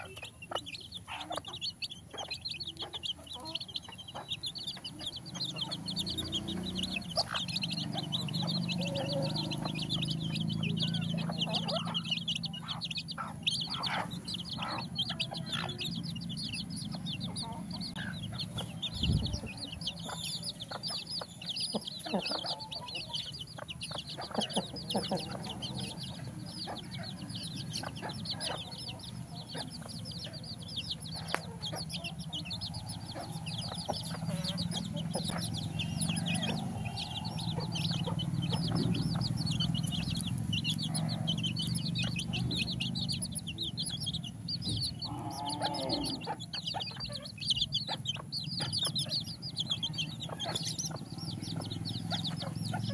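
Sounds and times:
chicks peeping: 0.0s - 52.9s
low clucking: 0.0s - 52.9s.

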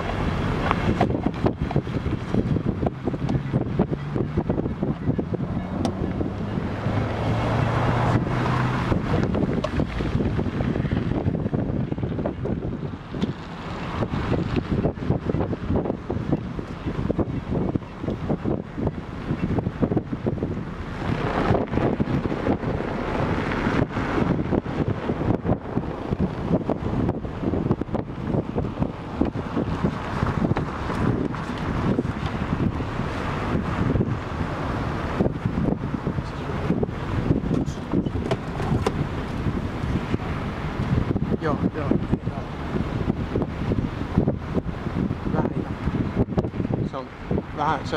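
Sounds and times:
car road noise: 0.0s - 47.9s
wind buffeting microphone: 0.0s - 47.9s.

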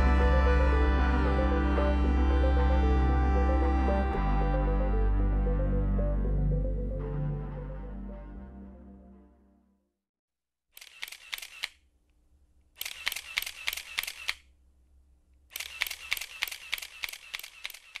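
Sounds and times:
camera shutter clicks: 10.8s - 11.8s, 12.8s - 14.5s, 15.5s - 18.0s.

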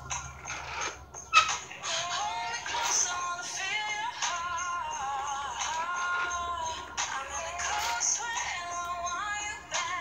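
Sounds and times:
ab roller wheel rolling on mat: 0.0s - 8.5s.

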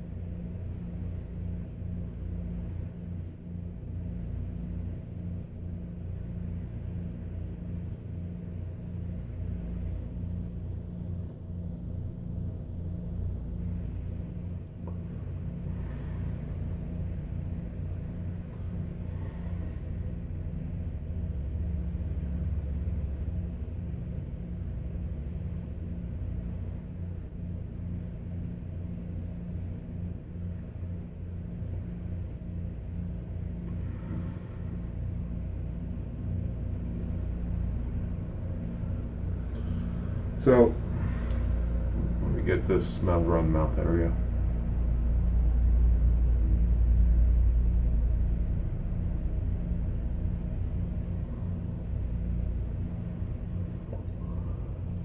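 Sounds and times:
low machine hum with flutter: 0.0s - 55.0s.

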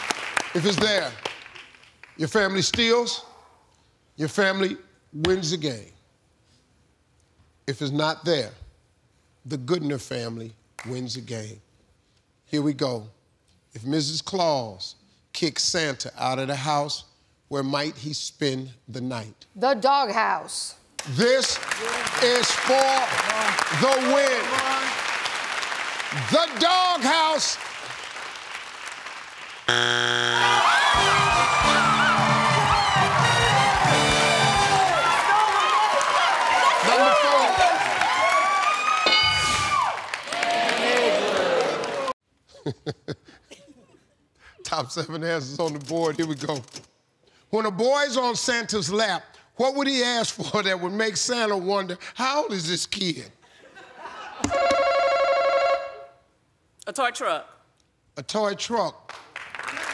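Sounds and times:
wrong-answer buzzer: 29.7s - 30.6s, 54.5s - 56.1s
people whooping and cheering: 30.3s - 42.1s
upbeat theme music with drums: 31.0s - 34.8s.

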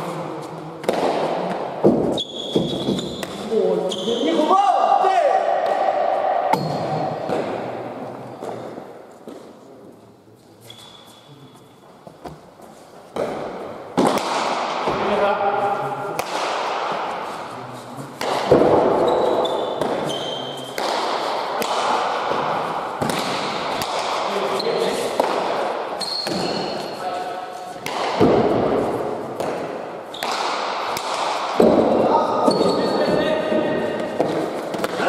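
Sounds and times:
players' voices: 0.0s - 11.7s, 12.8s - 35.0s
shoes squeaking on court floor: 2.1s - 4.4s, 10.4s - 13.2s, 19.0s - 20.8s, 24.5s - 25.1s, 26.0s - 27.8s, 30.0s - 30.4s, 32.4s - 35.0s.

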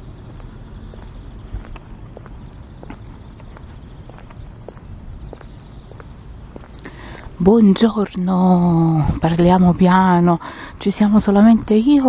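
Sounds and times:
footsteps on pavement: 0.0s - 7.5s.

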